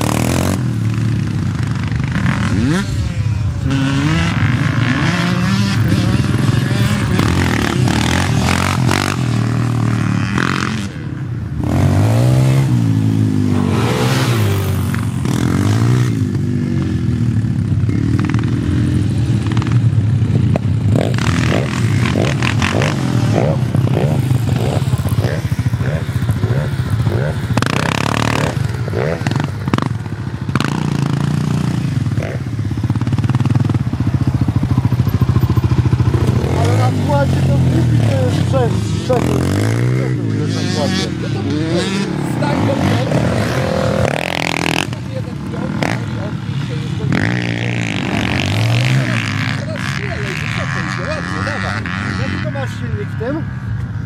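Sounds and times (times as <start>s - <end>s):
quad engines revving: 0.0s - 54.0s.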